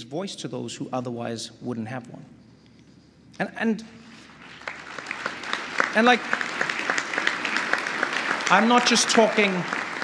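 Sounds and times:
crowd applause: 4.4 - 10.0.

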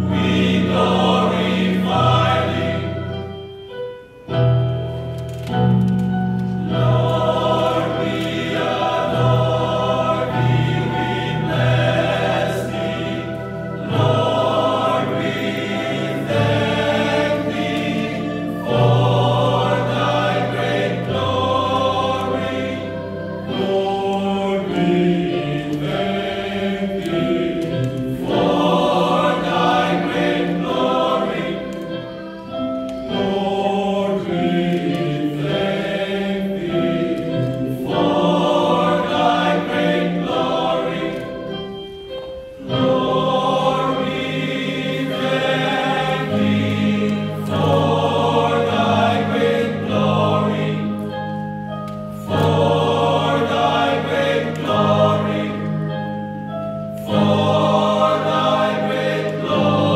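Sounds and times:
men's choir singing: 0.0 - 3.5, 6.4 - 59.9.

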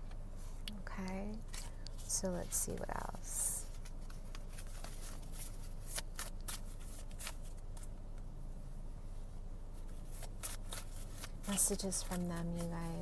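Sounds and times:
steady low hum: 0.0 - 13.0
cards being shuffled: 3.6 - 7.9, 9.8 - 13.0.

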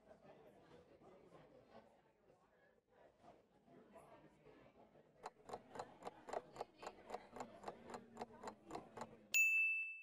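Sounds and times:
clock ticking: 5.3 - 9.1
bell ding: 9.4 - 10.0.

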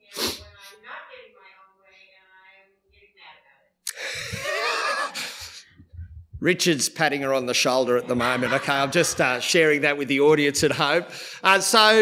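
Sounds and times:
breathy burst: 3.9 - 5.8.

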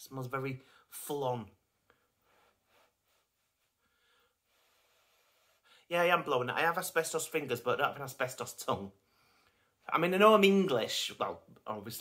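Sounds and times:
man speaking: 0.0 - 1.6, 5.9 - 9.0, 9.8 - 12.0
short breath in: 1.9 - 5.9.

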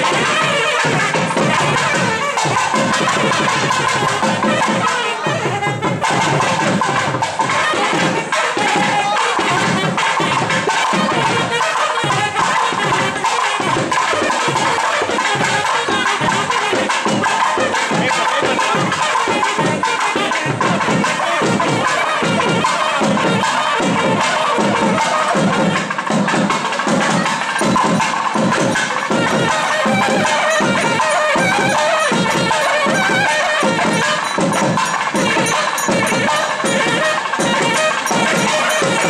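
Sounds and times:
drum beating fast strokes: 0.0 - 39.0
reedy wind instrument melody: 0.0 - 39.0.

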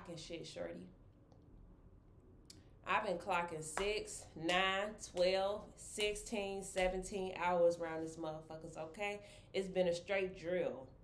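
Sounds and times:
woman talking: 0.0 - 0.9, 2.8 - 11.0.

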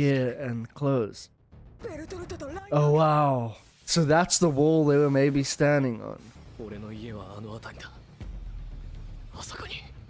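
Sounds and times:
person whispering: 9.3 - 10.0.

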